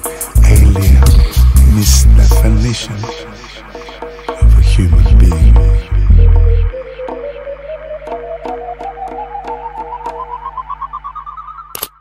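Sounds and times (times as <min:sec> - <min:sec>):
electronic tone gliding upward: 0:03.0 - 0:11.8.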